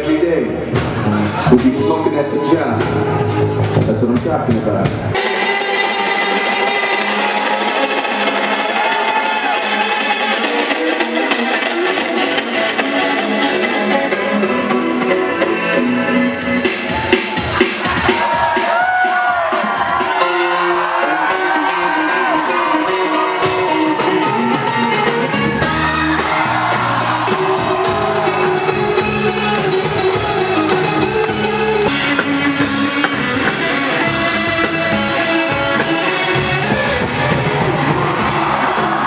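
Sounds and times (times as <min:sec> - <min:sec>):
electric guitar: 0:04.8 - 0:39.0
person singing: 0:20.2 - 0:37.2
low bass line: 0:24.3 - 0:39.0.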